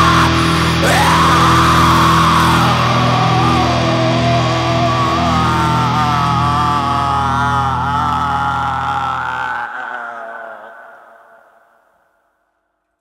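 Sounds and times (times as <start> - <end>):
wavering high guitar tone: 0.0 - 9.3
dense low drone: 0.0 - 10.6.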